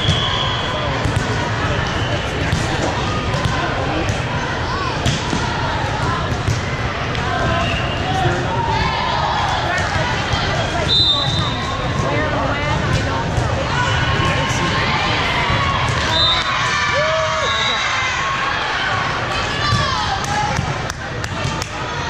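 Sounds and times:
murmur of many voices: 0:00.0 - 0:22.0
volleyball hits and bounces: 0:00.9 - 0:01.4, 0:05.0 - 0:07.7, 0:19.6 - 0:21.9.

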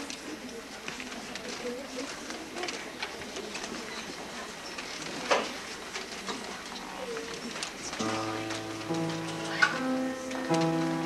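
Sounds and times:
audience murmur and rustle: 0:00.0 - 0:11.0.

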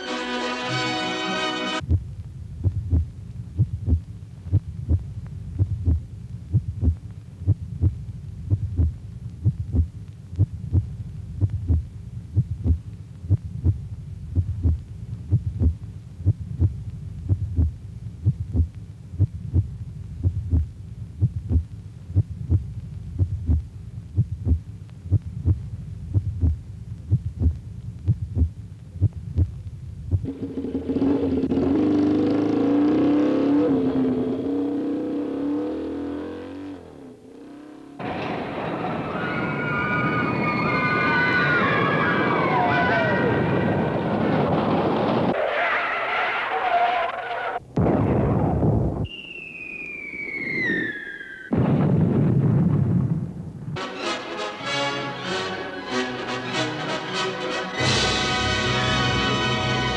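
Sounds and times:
orchestral music: 0:00.0 - 0:01.8, 0:53.8 - 0:59.9
heartbeat-like low thumps: 0:01.8 - 0:30.3.

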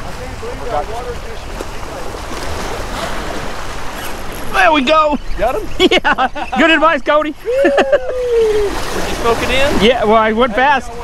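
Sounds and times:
waves splashing on rocks: 0:00.0 - 0:05.2, 0:08.1 - 0:11.0.

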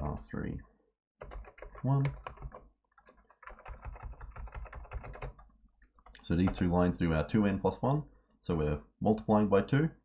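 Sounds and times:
computer keyboard typing: 0:01.2 - 0:06.7.

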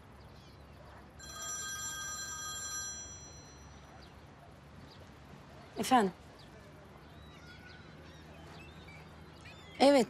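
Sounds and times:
mobile phone ringtone: 0:01.2 - 0:03.8.

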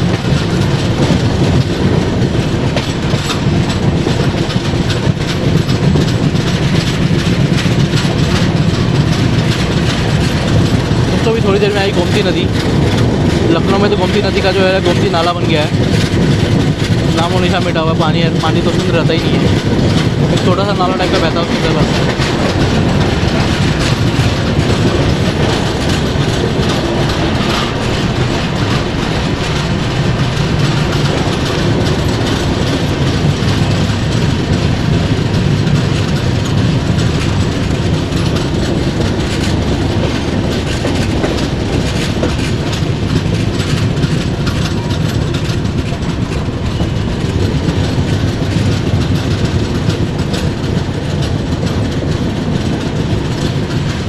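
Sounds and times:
clickety-clack of rail joints: 0:00.0 - 0:54.0
train wheels rumbling on rails: 0:00.0 - 0:54.0.

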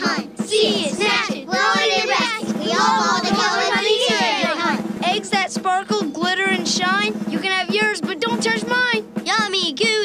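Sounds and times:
voices singing children's song: 0:00.0 - 0:10.0.

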